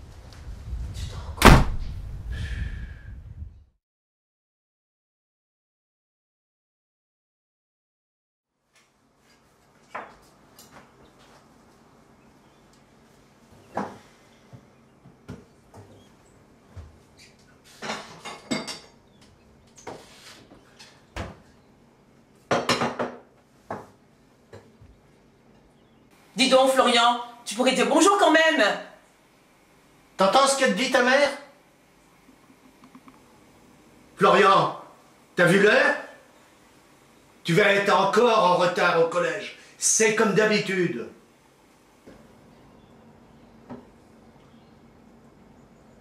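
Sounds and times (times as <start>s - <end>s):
door slamming: 1.4s - 2.0s
crockery and cutlery clattering: 17.8s - 19.0s.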